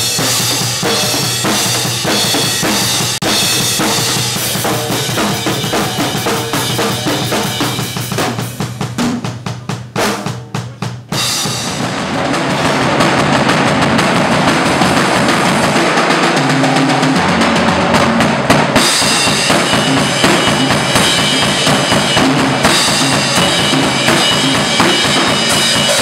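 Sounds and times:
drum kit playing: 0.0s - 26.0s
cymbals washing: 18.8s - 26.0s.

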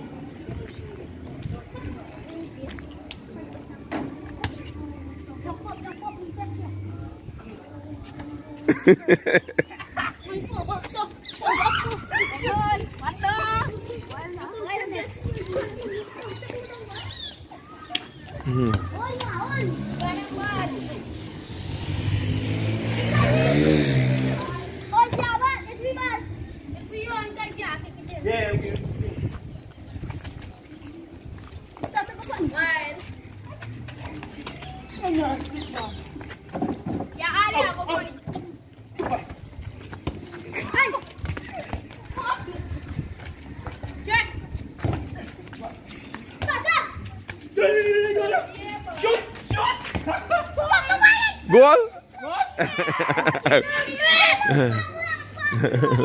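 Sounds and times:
children calling and shouting: 0.0s - 56.0s.

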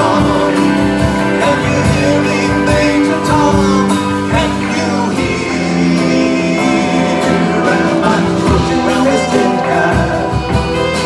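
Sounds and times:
folk-rock band playing: 0.0s - 11.0s
person singing: 0.0s - 11.0s
violin: 0.0s - 11.0s.

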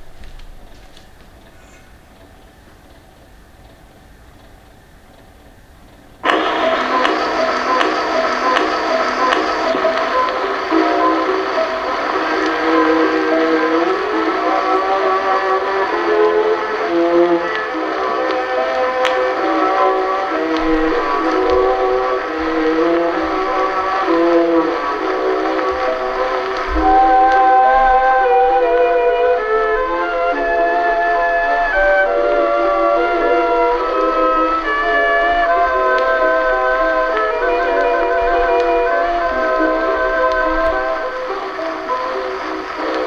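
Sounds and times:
old orchestra recording: 0.0s - 43.0s
record surface hiss: 0.0s - 43.0s.

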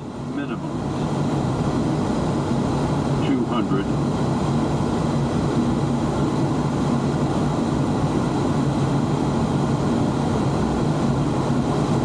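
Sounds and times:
turboprop engines droning: 0.0s - 12.0s.

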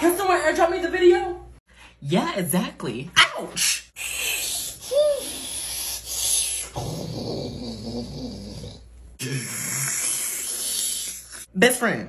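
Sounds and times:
person groaning: 4.0s - 11.4s.

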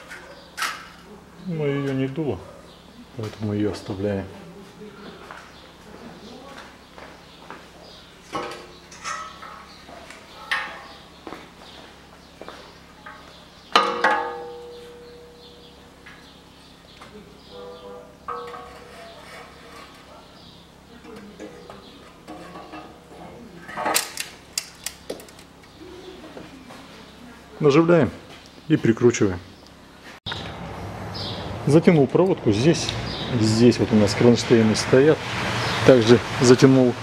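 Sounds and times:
metal clanks and scrapes: 8.3s - 9.8s, 17.5s - 20.4s, 21.0s - 24.3s.

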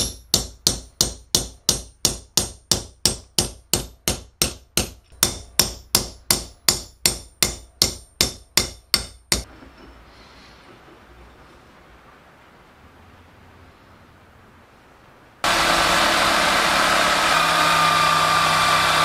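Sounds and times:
steel bar striking anvil: 0.0s - 9.5s.

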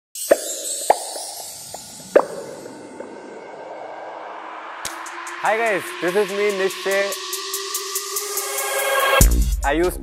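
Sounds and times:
sharp pitched pops: 0.2s - 3.2s.

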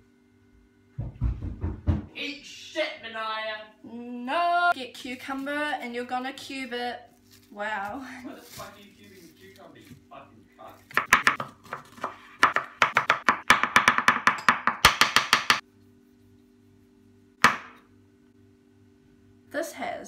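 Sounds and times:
knife chopping on wooden board: 10.9s - 15.6s, 17.4s - 17.8s.

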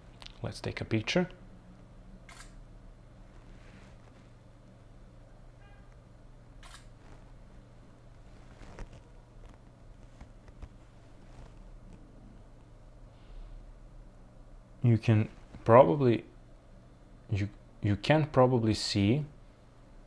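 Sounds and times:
low steady hum: 0.0s - 20.0s
phone camera shutter clicks: 2.3s - 2.6s, 6.6s - 6.9s.

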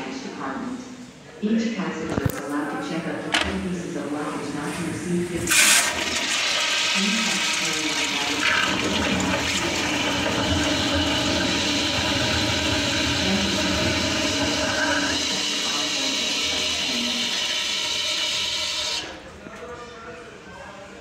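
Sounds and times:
toilet flushing: 4.5s - 19.2s.

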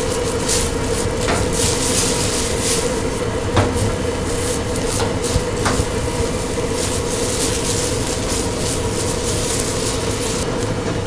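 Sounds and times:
steady hum: 0.0s - 11.0s
water boiling in a pot: 0.0s - 11.0s.

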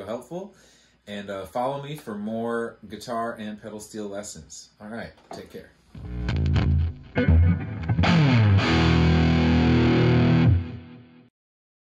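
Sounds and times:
distorted electric guitar: 5.9s - 11.3s.

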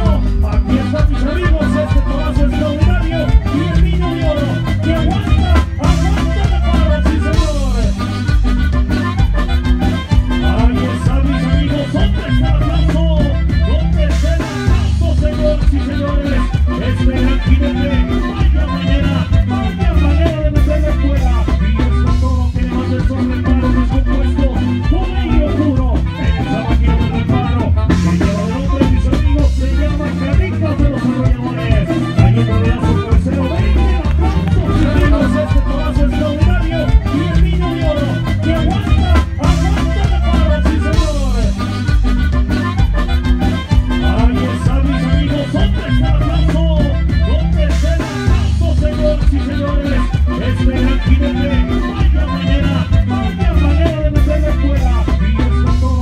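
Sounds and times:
heavy steady bass: 0.0s - 56.0s
live band playing lively music: 0.0s - 56.0s.

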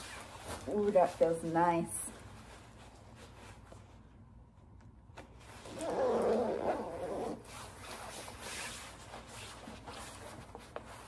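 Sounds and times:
nylon fabric rustling: 0.0s - 4.3s, 5.3s - 11.0s
jacket zipper rasping: 5.6s - 9.5s.

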